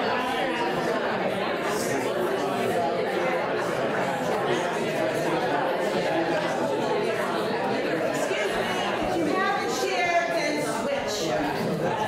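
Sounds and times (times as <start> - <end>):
hubbub of overlapping conversations: 0.0 - 12.0.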